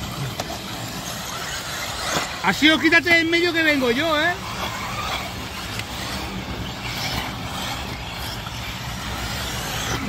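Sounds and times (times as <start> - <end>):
rc buggy motors revving: 0.0 - 10.0.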